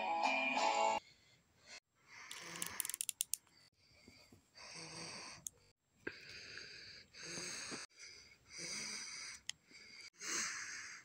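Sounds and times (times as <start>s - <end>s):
person breathing heavily: 1.0s - 11.0s.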